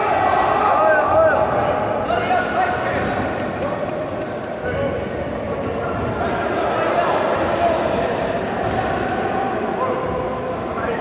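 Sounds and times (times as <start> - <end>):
crowd chatter in echoing hall: 0.0 - 11.0.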